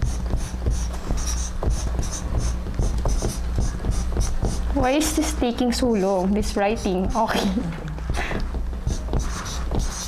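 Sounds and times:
marker pen scratching on board: 0:00.0 - 0:10.0.

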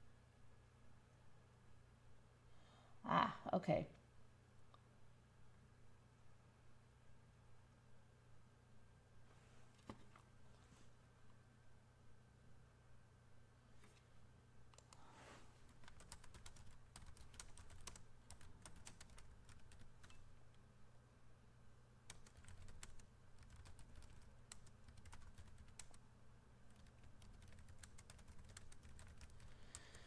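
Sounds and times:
low steady hum: 0:00.0 - 0:30.0
computer keyboard typing: 0:14.8 - 0:15.0, 0:15.6 - 0:20.4, 0:22.1 - 0:26.0, 0:26.7 - 0:30.0.

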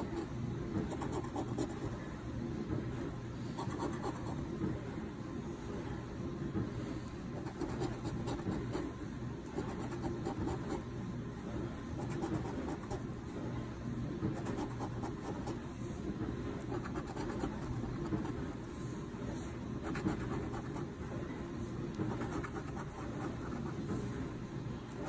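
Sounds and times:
low background hum: 0:00.0 - 0:25.0.

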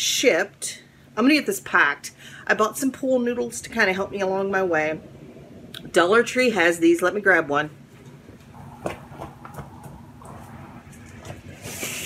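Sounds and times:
low steady hum: 0:00.0 - 0:12.0
short scraping hiss: 0:11.5 - 0:12.0.

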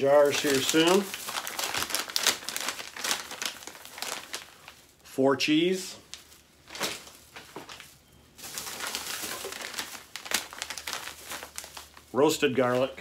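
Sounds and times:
plastic pouches crinkling: 0:00.0 - 0:05.1, 0:06.0 - 0:13.0.

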